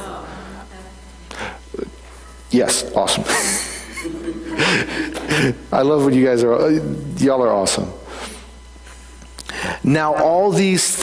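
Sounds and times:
low steady hum: 0.0 - 11.0
man speaking: 1.7 - 3.5, 5.5 - 8.0, 9.8 - 11.0
short breath: 9.4 - 9.8.

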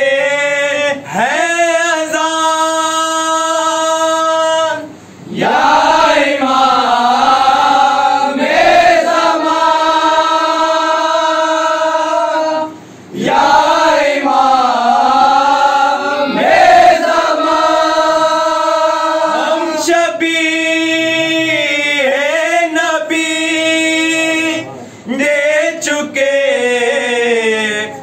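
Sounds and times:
men chanting in unison: 0.0 - 28.0.

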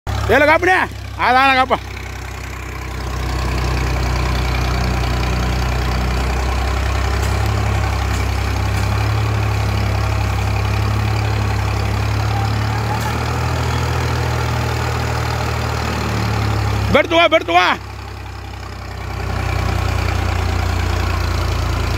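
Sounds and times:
tractor diesel engine droning: 0.1 - 21.9.

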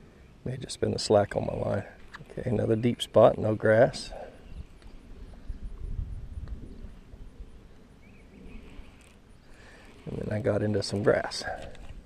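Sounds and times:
light reel clicks: 8.8 - 9.2.

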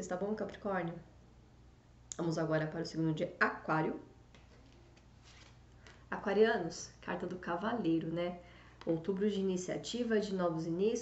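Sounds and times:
low room hum: 0.0 - 11.0
cards rustling: 4.3 - 6.0.

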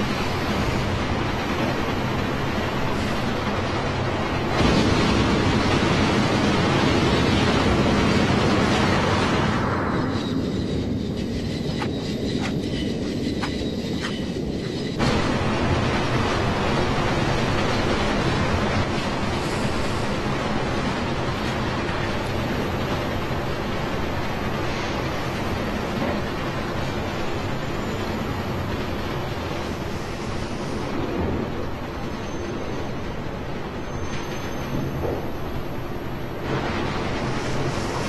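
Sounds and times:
train moving heard from inside: 0.0 - 38.0.

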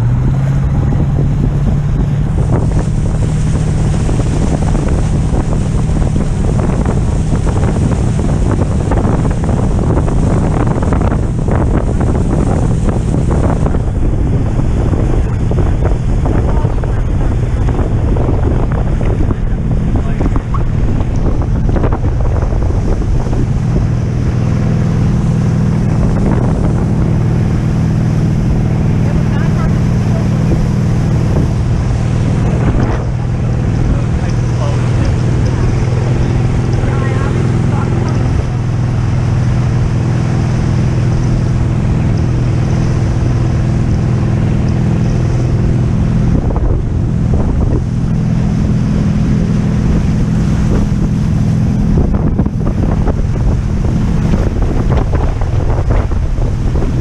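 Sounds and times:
speedboat engine running: 0.0 - 57.0
water spray rushing: 0.0 - 57.0
wind buffeting microphone: 0.0 - 57.0.

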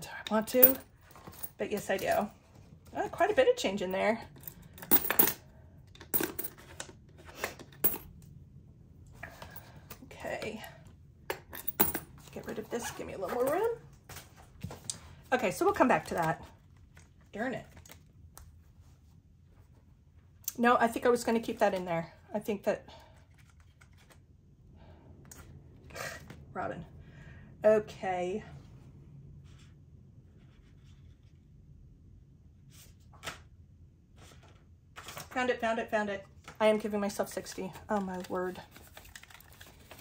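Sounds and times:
coins clinking in pouch: 4.8 - 5.4, 11.6 - 12.0
plastic envelopes being handled: 37.7 - 40.0.

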